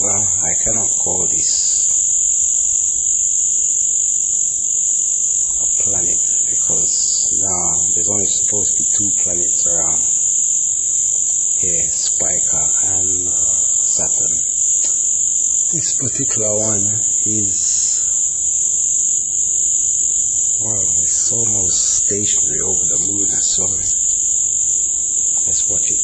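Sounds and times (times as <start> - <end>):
voice murmuring: 0.0 - 1.9, 5.6 - 10.2, 11.6 - 15.0, 15.7 - 18.2, 20.6 - 24.0, 25.4 - 26.0
high-pitched hiss: 0.0 - 26.0.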